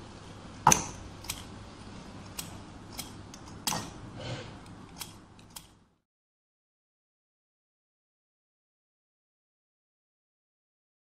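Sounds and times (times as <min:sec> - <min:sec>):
scissors snipping paper: 0:04.9 - 0:05.8.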